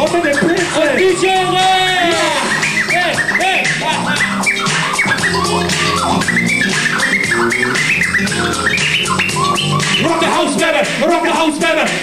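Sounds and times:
record scratching: 0.0 - 10.8
hip-hop drum beat: 0.0 - 12.0.

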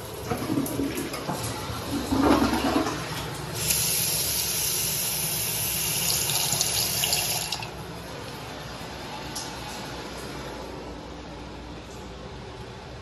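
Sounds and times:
toilet flushing: 0.0 - 8.0.

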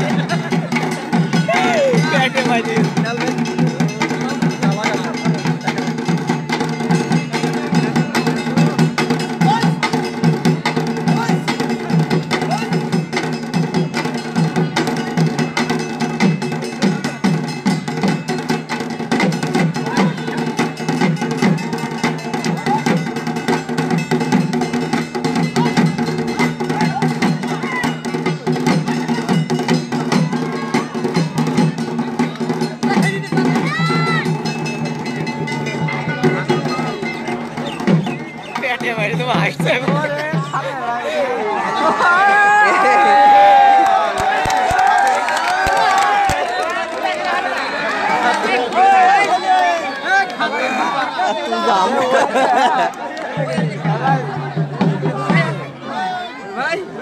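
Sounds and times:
dhol drums playing fast rhythm: 0.0 - 41.2, 51.6 - 57.0
crowd voices: 0.0 - 57.0.

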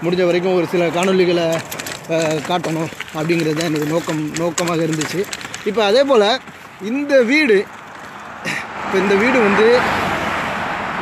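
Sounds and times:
car passing on road: 0.0 - 11.0.

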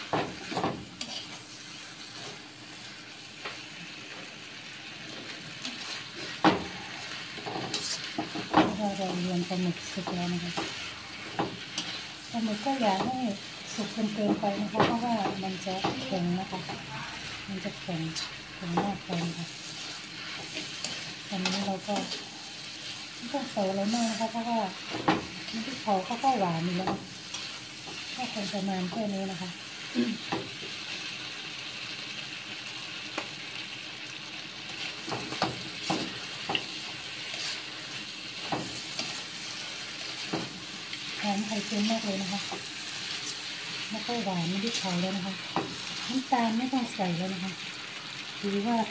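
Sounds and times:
food sizzling in hot pan: 0.0 - 48.9.

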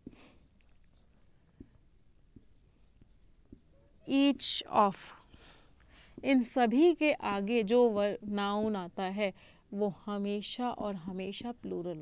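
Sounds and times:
marker pen writing on whiteboard: 0.9 - 4.6
woman speaking: 4.1 - 5.2, 6.2 - 12.0.

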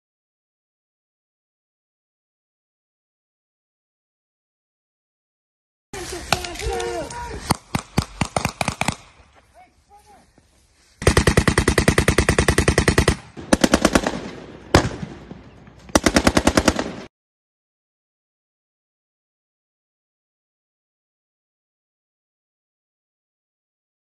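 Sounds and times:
men shouting: 6.0 - 7.5
rifle shots: 6.2 - 9.2, 11.0 - 17.1
automatic gunfire bursts: 7.5 - 9.1, 11.0 - 15.1, 15.9 - 17.1.

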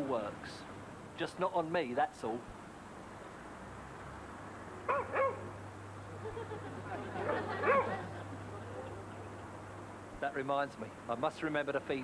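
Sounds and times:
dog barking: 4.9 - 5.5, 7.6 - 8.0.

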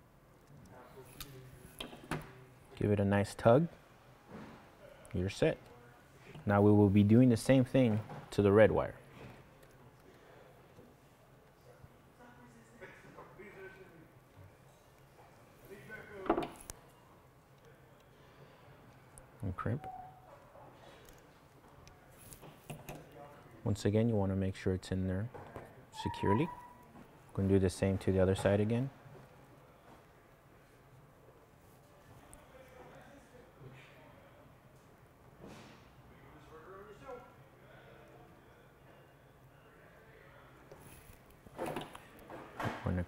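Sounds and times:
man speaking: 19.4 - 20.0, 26.0 - 26.6.

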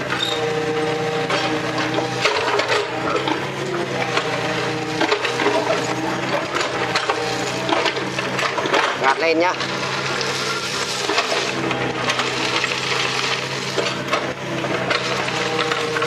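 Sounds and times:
excavator engine running: 0.0 - 16.0.

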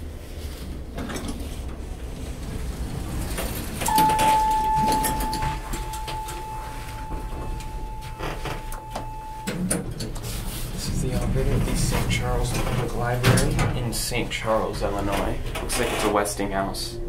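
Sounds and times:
elevator steady ringing tone: 2.0 - 17.0
elevator cab clicks and rattles: 3.3 - 10.3, 11.0 - 16.4.

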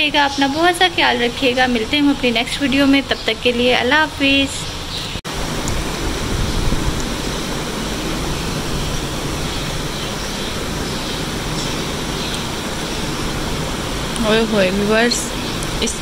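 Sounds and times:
steady rushing noise: 0.0 - 16.0.

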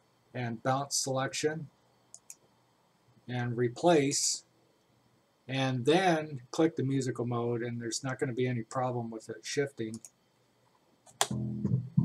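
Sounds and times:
bass riff: 11.2 - 12.0.

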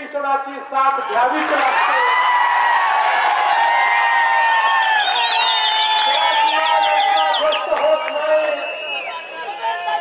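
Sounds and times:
crowd cheering and shouting: 1.0 - 10.0.

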